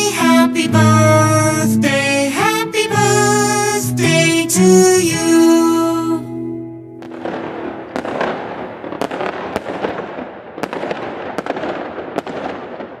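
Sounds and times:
fireworks bangs: 7.0 - 13.0
fireworks crackling: 7.0 - 13.0.

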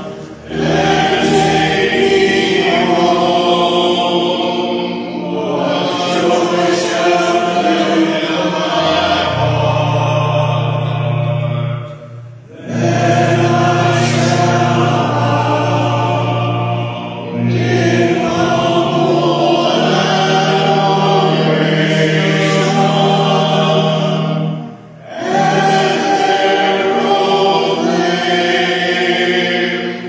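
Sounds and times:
church organ playing a hymn: 0.0 - 30.0.

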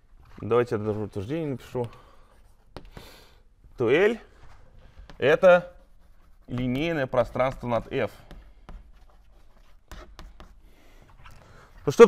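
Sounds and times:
chalk tapping on board: 2.7 - 3.2, 5.0 - 10.7
chalk scratching on blackboard: 5.0 - 11.0.

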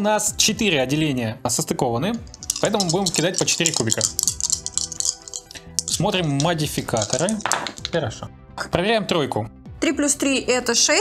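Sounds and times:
background music: 0.0 - 11.0
plastic dice rattling in hands: 2.2 - 8.2.

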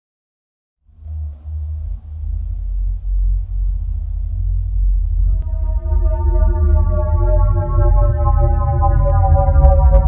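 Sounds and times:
deep rumbling drone: 0.8 - 10.0.

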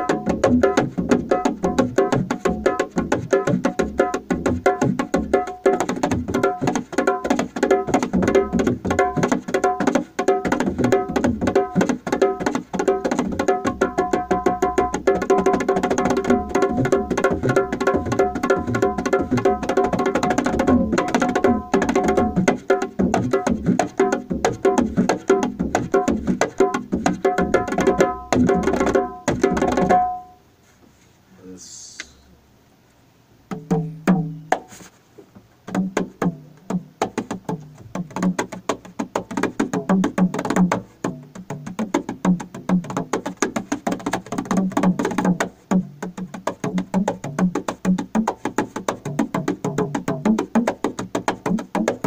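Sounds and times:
hand drum fast strokes: 0.0 - 30.2, 35.7 - 52.0.

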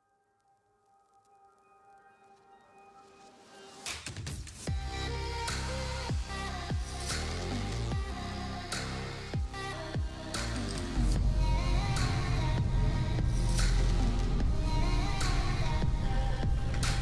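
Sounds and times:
music with sliding bass: 4.7 - 17.0.

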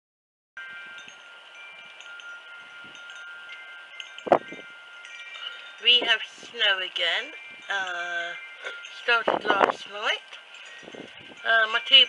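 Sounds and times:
wind chimes ringing: 0.6 - 12.0.

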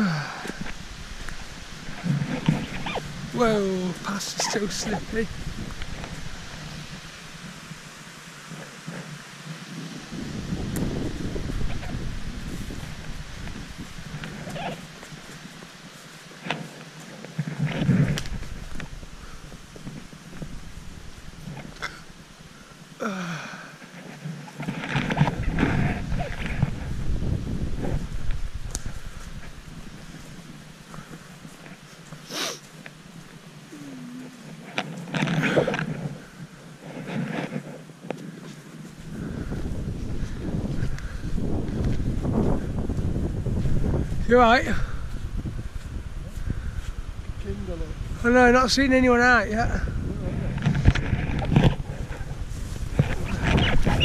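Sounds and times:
wind buffeting microphone: 0.0 - 16.5, 17.3 - 23.0, 24.6 - 54.0
footsteps on leaf litter: 8.7 - 22.3.

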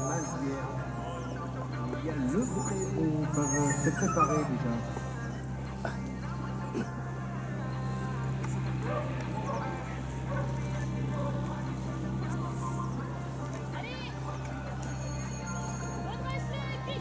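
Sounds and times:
indistinct voices: 0.0 - 17.0
steady low hum: 4.5 - 17.0.

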